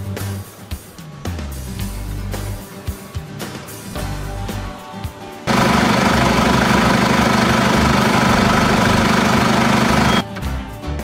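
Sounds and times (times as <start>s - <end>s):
tractor diesel engine running: 5.5s - 10.2s.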